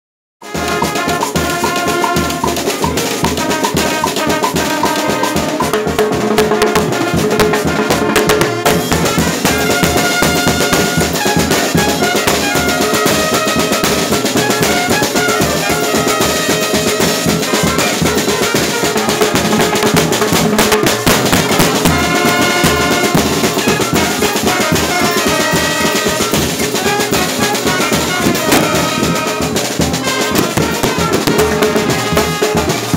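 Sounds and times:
brass melody: 0.4 - 32.9
bass drum beat: 0.5 - 32.9.

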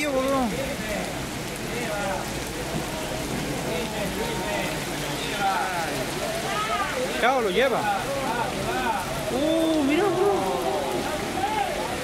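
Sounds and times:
heavy rain on flooded street: 0.0 - 12.0.

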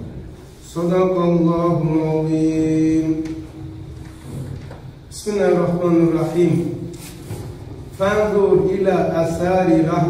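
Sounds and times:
man chanting melodically: 0.6 - 4.3, 5.0 - 7.0, 7.8 - 10.0.

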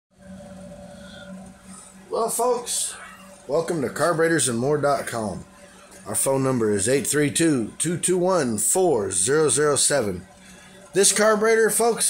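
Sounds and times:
low steady hum: 0.2 - 12.0.

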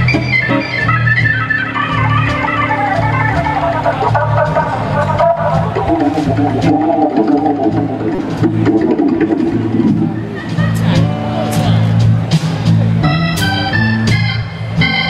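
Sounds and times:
drums with cymbals: 0.0 - 15.0
electric bass: 0.0 - 15.0
organ chords: 0.0 - 15.0.

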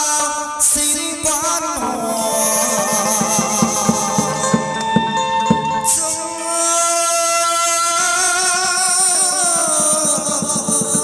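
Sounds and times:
wavering ritual melody: 1.3 - 11.0
fast tapping beat: 1.8 - 6.1, 9.0 - 11.0.

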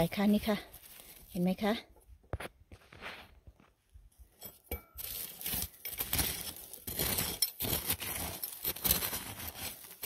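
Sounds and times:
metal tool scraping soil: 4.2 - 10.0.

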